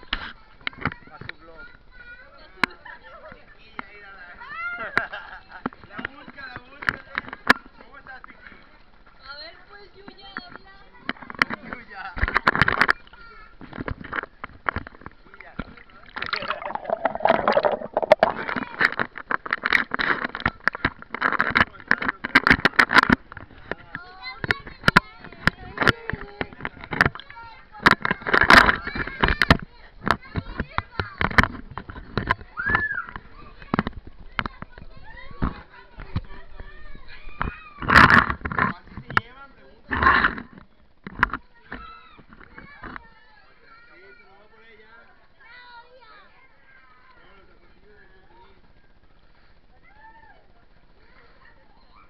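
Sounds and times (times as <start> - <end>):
children's voices: 0.0 - 2.6, 23.7 - 38.0, 41.2 - 44.4, 45.3 - 48.6, 49.3 - 52.0
sharp clicks and knocks: 13.6 - 32.5
water sloshing and splashing: 13.7 - 23.6
muffled underwater rush with bubbles: 15.6 - 18.6.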